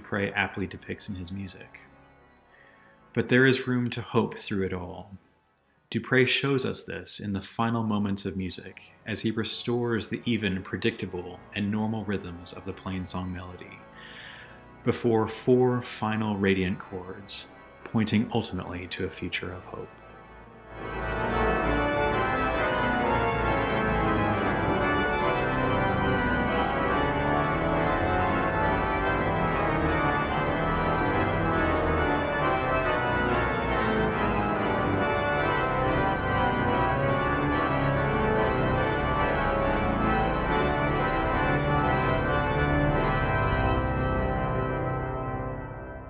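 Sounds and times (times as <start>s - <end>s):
pipe organ playing loudly: 0.0s - 2.1s, 9.1s - 46.0s.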